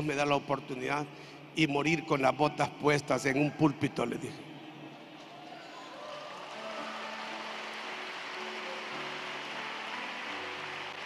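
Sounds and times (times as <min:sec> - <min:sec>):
congregation clapping: 0:04.9 - 0:11.0
soft sustained instrumental chords: 0:06.5 - 0:11.0.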